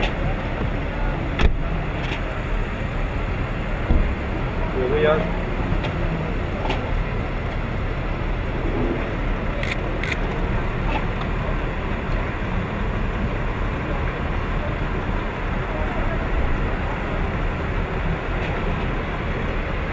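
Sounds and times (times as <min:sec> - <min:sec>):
motor vehicle rumble: 0:00.0 - 0:19.9.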